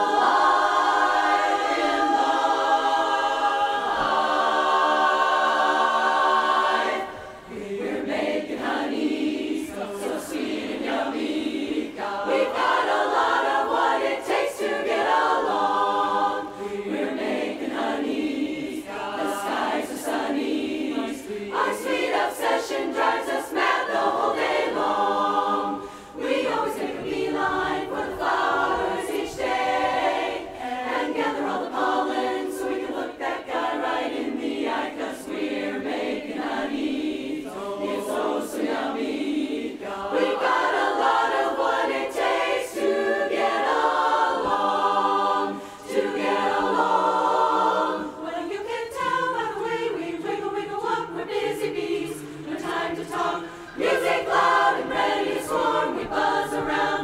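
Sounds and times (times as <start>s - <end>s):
women's chorus singing a cappella: 0.0s - 57.0s.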